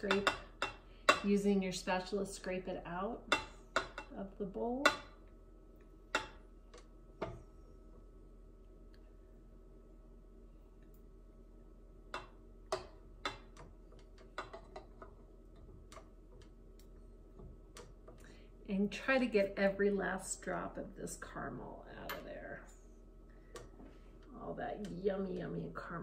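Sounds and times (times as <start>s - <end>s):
faint steady hum: 0.0s - 26.0s
spatula scraping and tapping container: 12.2s - 16.6s.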